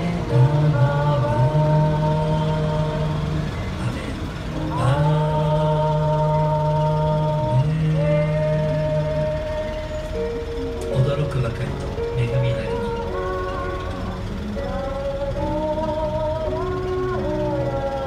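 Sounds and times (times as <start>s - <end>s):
group singing a hymn: 0.0s - 11.4s, 12.2s - 18.0s.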